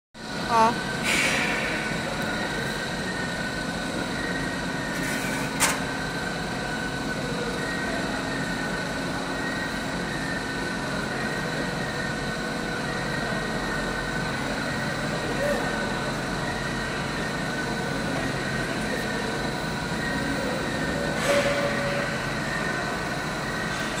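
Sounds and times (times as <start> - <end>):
machine drone with high whine: 0.2 - 24.0.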